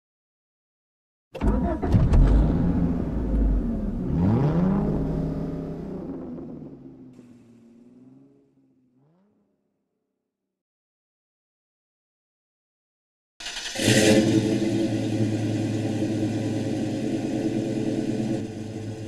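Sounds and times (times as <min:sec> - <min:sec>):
car engine starting and revving: 0:01.4 - 0:09.6, 0:13.4 - 0:19.0.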